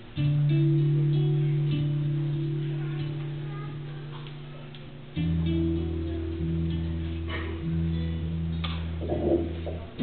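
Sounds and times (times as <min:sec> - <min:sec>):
bass notes: 0:00.0 - 0:10.0
guitar notes: 0:00.0 - 0:10.0.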